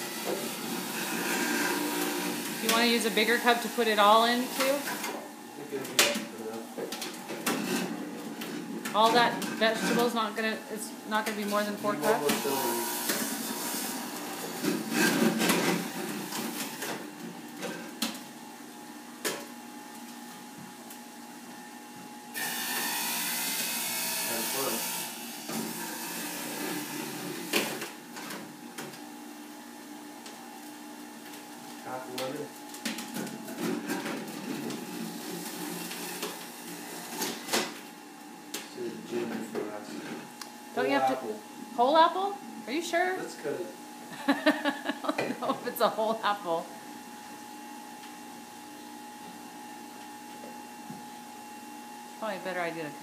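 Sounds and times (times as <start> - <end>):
electric juicer motor whine: 0.0 - 5.6, 7.3 - 53.0.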